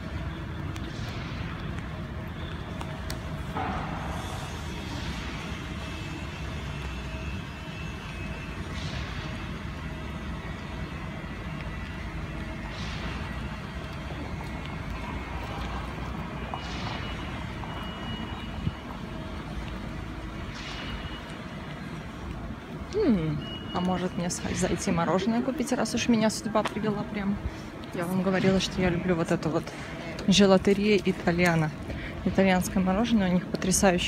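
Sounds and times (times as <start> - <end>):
traffic rumble: 0.0 - 34.0.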